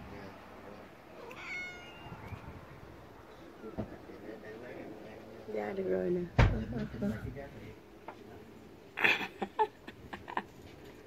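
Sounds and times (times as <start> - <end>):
cat meowing: 1.2 - 2.5.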